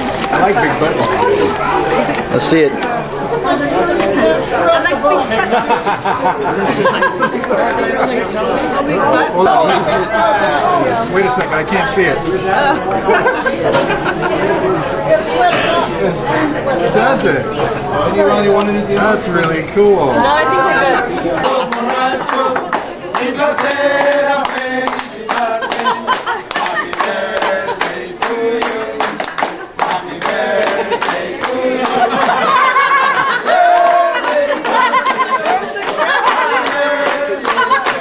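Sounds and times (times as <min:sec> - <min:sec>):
people laughing: 0:00.6 - 0:09.4, 0:12.5 - 0:16.1, 0:20.0 - 0:38.0
voices singing together: 0:20.2 - 0:38.0
people clapping in rhythm: 0:21.4 - 0:38.0.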